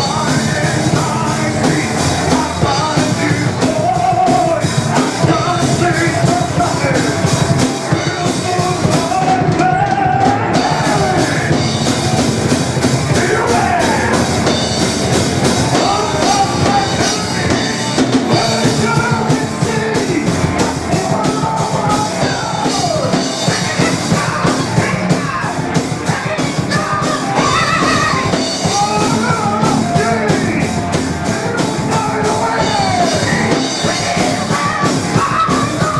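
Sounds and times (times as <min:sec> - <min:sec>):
distorted electric guitar: 0:00.0 - 0:35.9
drum kit with cymbals: 0:00.0 - 0:35.9
electric bass: 0:00.0 - 0:35.9
melodic line above band: 0:00.0 - 0:35.9.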